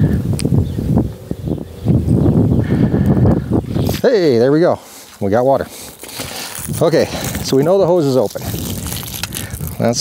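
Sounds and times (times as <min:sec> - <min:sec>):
water sputtering from garden hose: 0:05.7 - 0:10.0.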